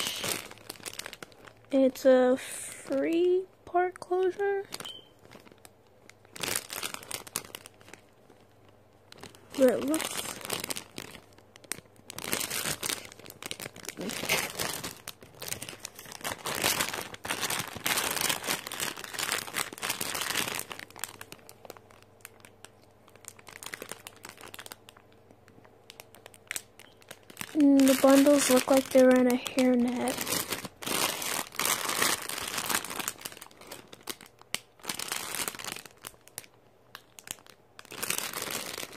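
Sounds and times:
plastic packaging crinkling: 0.0s - 38.9s.

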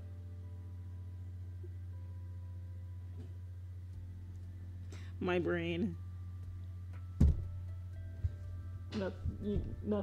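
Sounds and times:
faint thin steady tones: 0.0s - 10.0s
low electrical hum: 0.0s - 10.0s.

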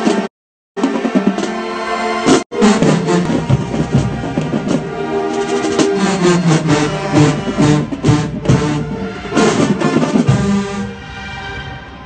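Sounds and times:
drums: 0.0s - 10.9s
marching band playing: 0.0s - 12.0s.

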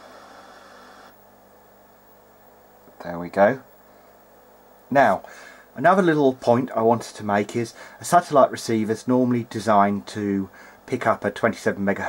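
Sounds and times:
faint low hum: 0.0s - 12.0s
static hiss: 0.0s - 12.0s.

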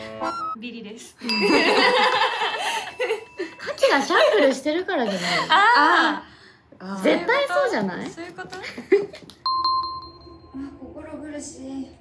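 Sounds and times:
bright bell-like chime: 1.2s - 4.6s, 9.5s - 10.9s.

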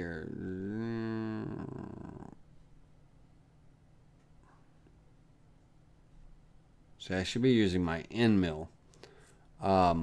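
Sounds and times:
man's hesitation sound: 0.0s - 2.4s
faint low hum: 0.0s - 10.0s.

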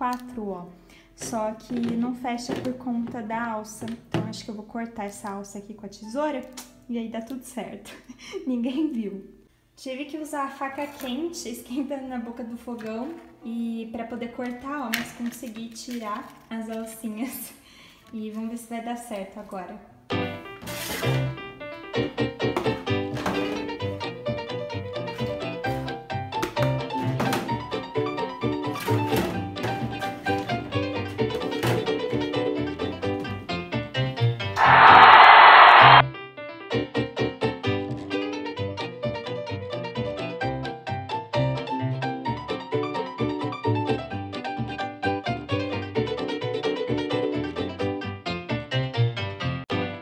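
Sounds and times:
instrumental music with piano: 20.1s - 34.6s, 36.1s - 50.0s
loud noisy sound effect: 34.6s - 36.0s.

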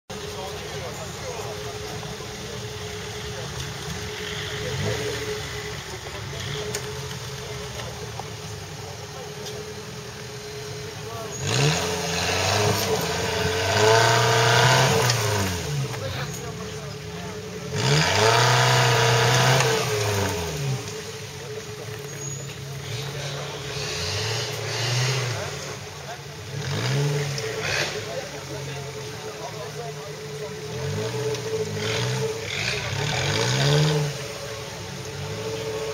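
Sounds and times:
off-road vehicle engine revving: 0.1s - 35.9s.

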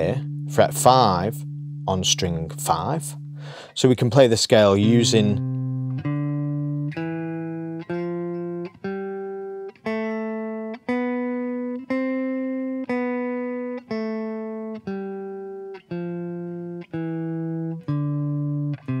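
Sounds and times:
clean electric guitar playing scale: 0.0s - 19.0s.

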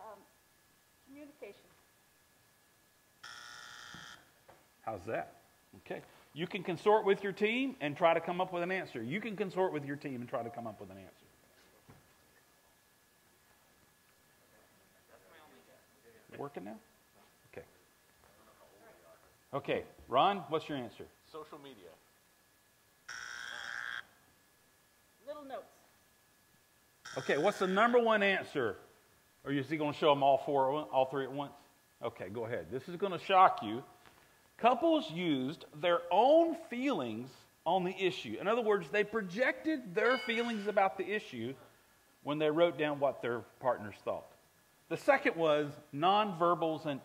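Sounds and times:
electronic game buzzer: 3.2s - 4.3s, 23.1s - 24.1s, 27.0s - 28.0s.

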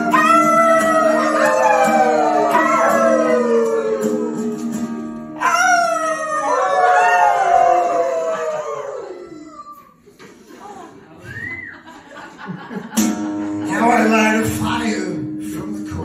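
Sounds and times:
people howling like dogs: 0.0s - 4.8s, 5.4s - 9.9s
acoustic guitar chord ringing: 2.3s - 5.4s, 13.0s - 16.0s.

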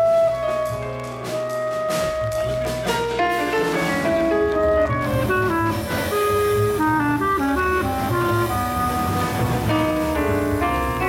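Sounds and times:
clarinet solo: 0.0s - 10.9s
drums: 0.0s - 11.0s
upright bass: 0.0s - 11.0s.

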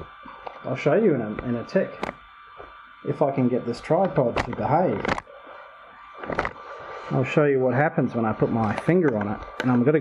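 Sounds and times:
faint cooling fan hum: 0.0s - 10.0s
tripod creak: 6.2s - 6.6s.

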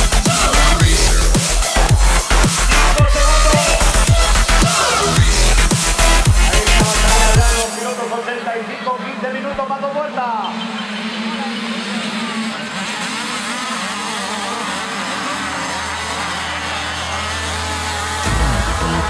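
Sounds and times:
motocross bikes revving: 0.0s - 19.0s.

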